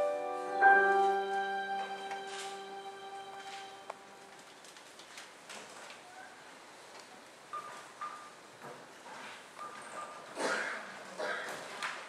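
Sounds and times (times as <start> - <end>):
soft high keyboard notes: 0.0 - 4.2.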